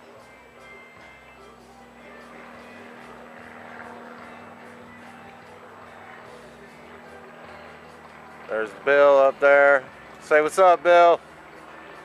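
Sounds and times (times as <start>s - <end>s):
faint music: 0.0s - 12.0s
propeller airplane droning: 0.0s - 12.0s.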